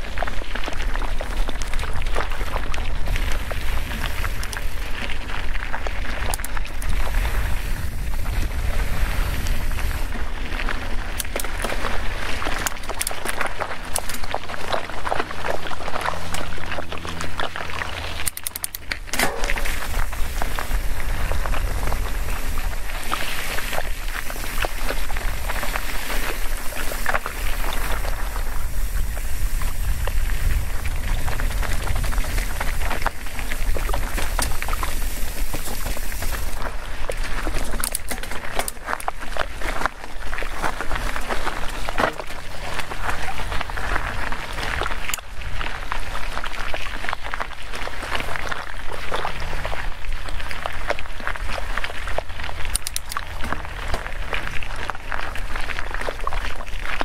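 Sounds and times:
bike rattling over stones: 0.0 - 57.0
bike tyres crunching on gravel: 0.0 - 57.0
wind rumble on microphone: 0.0 - 57.0
freewheel hub ratcheting buzz: 15.8 - 36.6.

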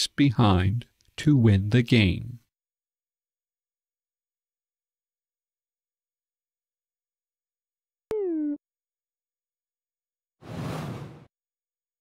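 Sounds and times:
whoosh sound effect: 10.4 - 11.3.

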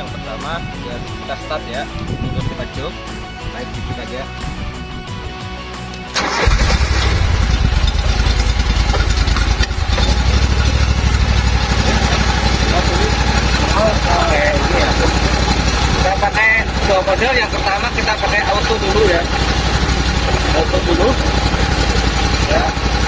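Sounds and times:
fire pump engine starting and running: 5.7 - 23.0.

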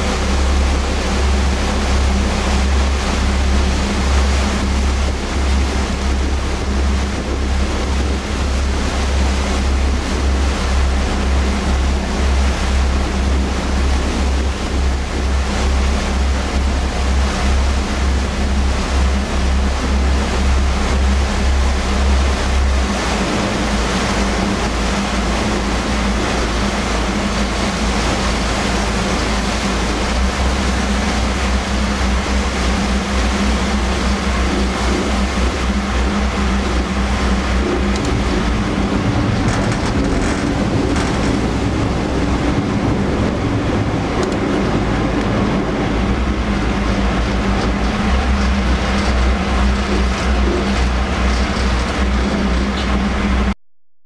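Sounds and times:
diesel engine droning: 0.0 - 53.6
water rushing along hull: 0.0 - 53.6.

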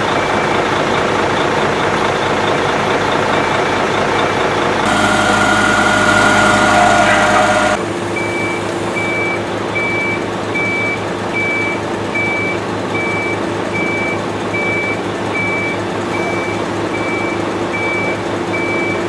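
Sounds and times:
heavy truck engine running: 0.8 - 8.1
truck reversing alarm beeping: 4.8 - 7.8.

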